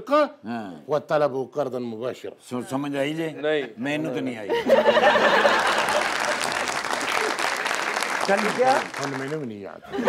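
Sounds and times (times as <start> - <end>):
audience applause: 5.2 - 9.6.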